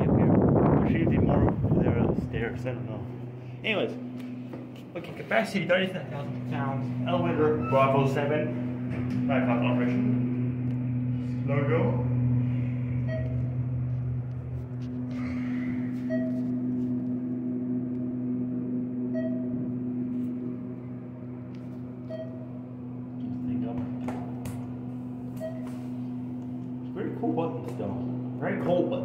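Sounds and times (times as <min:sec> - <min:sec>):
elevator hum: 0:00.0 - 0:29.0
short electronic beep: 0:13.0 - 0:13.5, 0:15.9 - 0:16.5, 0:19.1 - 0:19.6, 0:22.0 - 0:22.5, 0:25.4 - 0:25.8.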